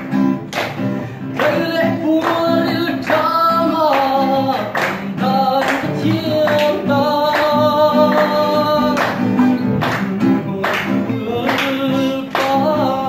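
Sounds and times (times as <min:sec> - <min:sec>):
strummed acoustic guitar: 0:00.0 - 0:13.0
young man singing slowly: 0:01.2 - 0:13.0.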